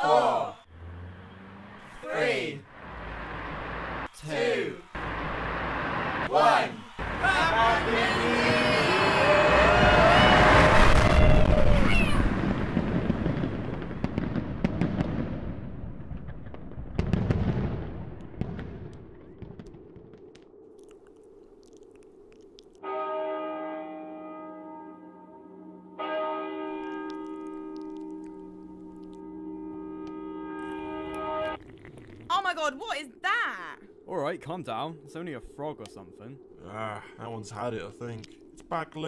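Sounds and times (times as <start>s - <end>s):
crowd cheering and whooping: 0.0s - 0.7s, 4.2s - 12.6s
fireworks crackling: 5.0s - 20.5s.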